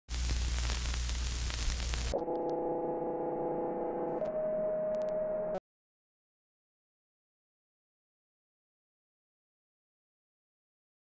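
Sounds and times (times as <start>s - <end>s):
static crackles: 0.0s - 2.6s
static hiss: 0.1s - 2.2s
low electrical hum: 0.1s - 4.2s.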